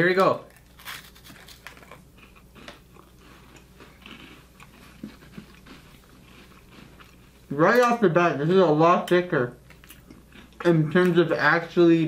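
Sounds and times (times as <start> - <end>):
crunching and chewing wafers: 0.5 - 7.9, 9.6 - 11.2.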